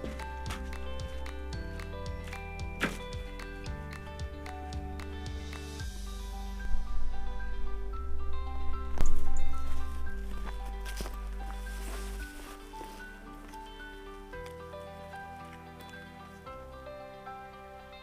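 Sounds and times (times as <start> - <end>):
instrumental background music: 0.0 - 18.0.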